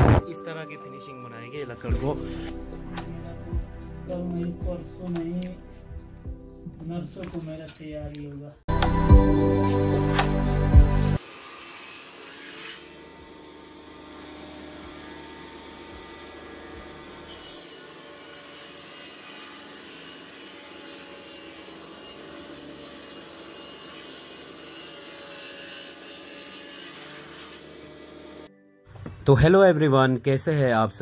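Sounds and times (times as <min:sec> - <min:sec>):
wood planer humming: 0:09.9 - 0:28.5.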